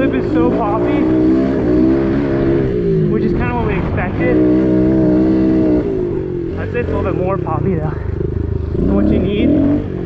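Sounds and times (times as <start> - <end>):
pit bike engine running: 0.0 - 10.0.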